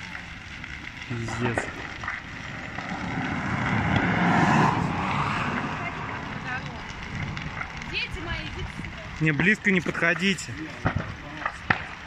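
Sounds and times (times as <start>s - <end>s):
vehicle passing by: 2.4s - 8.6s.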